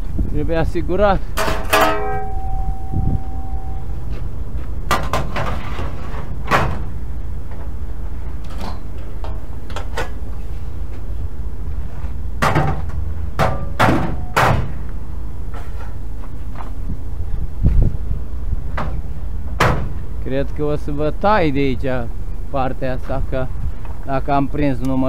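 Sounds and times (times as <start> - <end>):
metal knocks and clanks: 1.4 - 4.3, 12.4 - 14.8
steady low rumble: 1.9 - 4.9.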